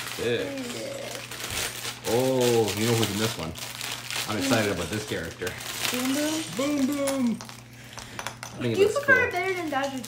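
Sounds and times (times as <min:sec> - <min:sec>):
plastic pieces rattling in bag: 0:00.0 - 0:07.6, 0:08.7 - 0:10.0.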